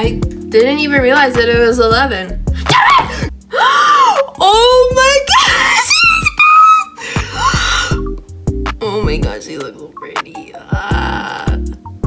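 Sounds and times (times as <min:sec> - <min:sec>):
background music with low beat: 0:00.0 - 0:12.0
woman screaming excitedly: 0:02.6 - 0:08.1.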